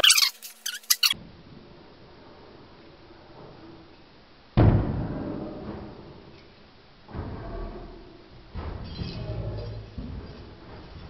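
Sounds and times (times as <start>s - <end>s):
short high squeaks: 0.0s - 1.2s.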